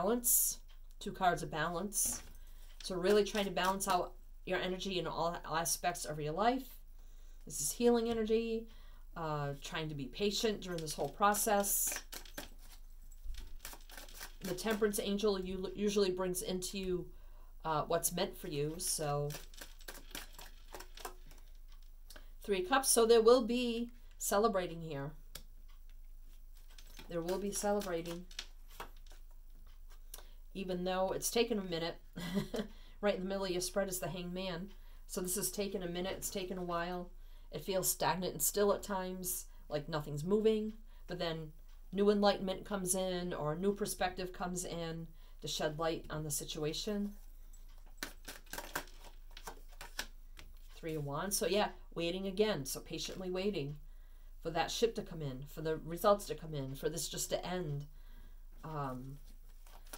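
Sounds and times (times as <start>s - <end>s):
cards tapping and rustling: 11.9s - 14.5s, 19.4s - 21.8s, 26.6s - 29.2s, 47.8s - 50.8s.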